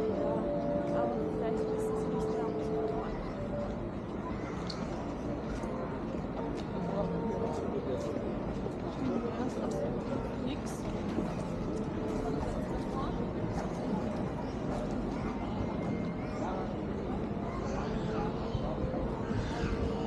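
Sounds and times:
indistinct voices of passers-by: 0:00.0 - 0:20.0.

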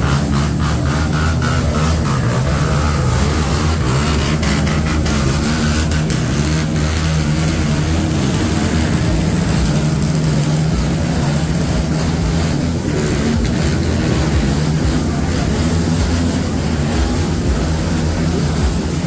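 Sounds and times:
low engine hum: 0:00.0 - 0:19.0.

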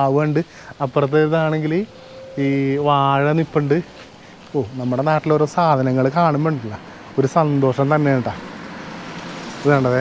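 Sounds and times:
man speaking in drawn-out vowels: 0:01.2 - 0:04.0.

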